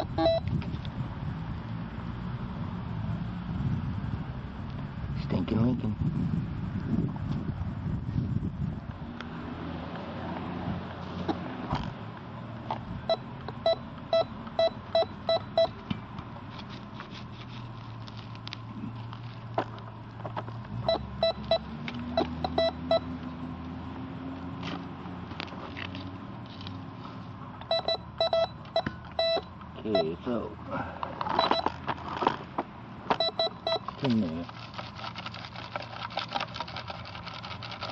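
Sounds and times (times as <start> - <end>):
metal detector short beeps: 0.0 - 0.5, 13.1 - 15.8, 20.9 - 21.6, 22.2 - 23.1, 27.7 - 30.2, 31.4 - 31.7, 33.2 - 33.9.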